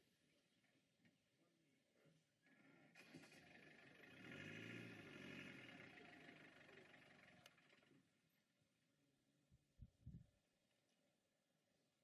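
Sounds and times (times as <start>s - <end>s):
vehicle passing: 3.0s - 7.9s.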